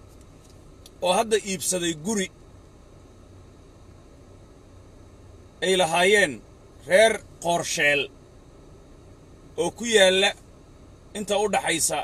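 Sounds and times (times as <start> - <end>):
car cabin hum and hiss: 0.0 - 12.0.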